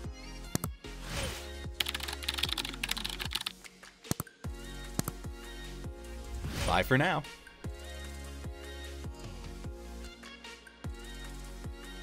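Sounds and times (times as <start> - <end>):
background music with steady beat: 0.0 - 12.0
keyboard typing: 1.8 - 4.3
sharp clicks: 5.0 - 5.2.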